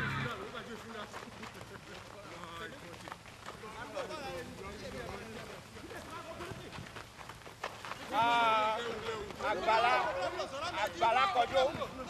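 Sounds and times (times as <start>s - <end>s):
faint voices calling: 0.0s - 12.0s
running footsteps on dirt: 0.0s - 12.0s.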